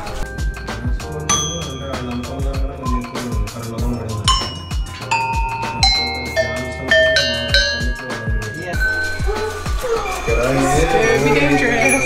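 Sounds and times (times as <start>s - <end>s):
background music with steady beat: 0.0s - 12.0s
copper bells struck with mallet: 0.4s - 12.0s.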